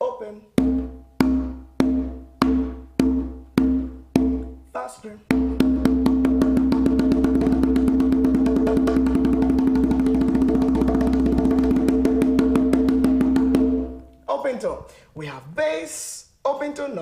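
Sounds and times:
conga drum open-tone strokes: 0.6 - 4.6, 5.3 - 14.1.

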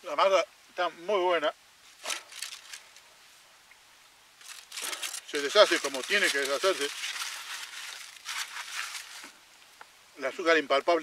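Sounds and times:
aluminium foil crinkling: 2.0 - 3.1, 4.4 - 9.4.

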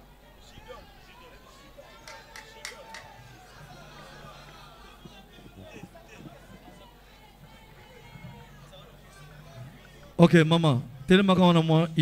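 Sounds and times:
faint voices: 0.0 - 11.1
faint music: 0.0 - 12.0.

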